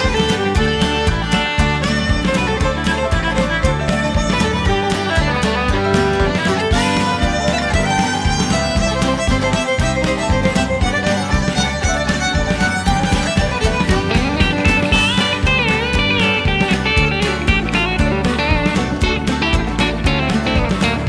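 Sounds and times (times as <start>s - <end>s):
country band playing: 0.0s - 21.0s
fiddle lead: 0.0s - 21.0s.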